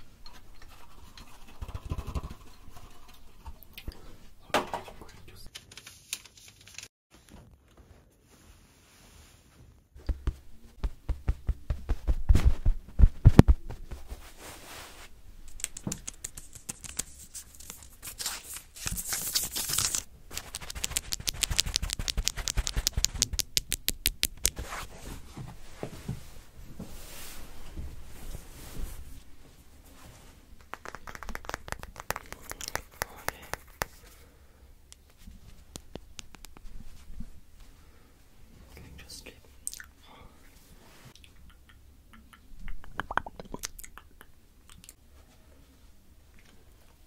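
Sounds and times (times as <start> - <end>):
fingers scratching on paper: 19.1 - 23.5
fingers tapping on paper: 20.4 - 24.6, 30.6 - 34.0.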